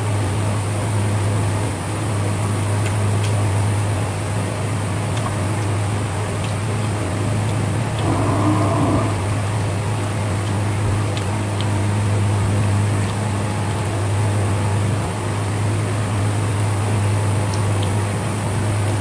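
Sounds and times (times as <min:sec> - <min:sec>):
motor humming and rushing: 0:07.6 - 0:10.2.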